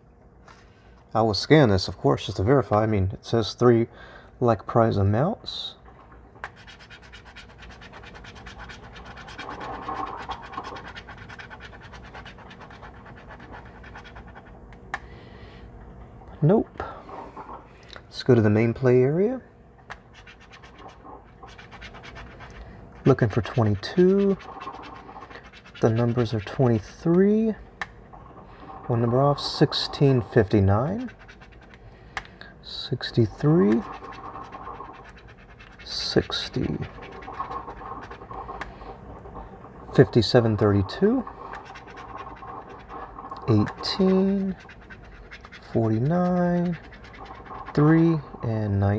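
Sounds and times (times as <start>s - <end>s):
coin scratching a ticket: 6.6s - 14.5s, 20.1s - 27.0s, 29.4s - 31.8s, 33.3s - 38.6s, 40.0s - 48.3s.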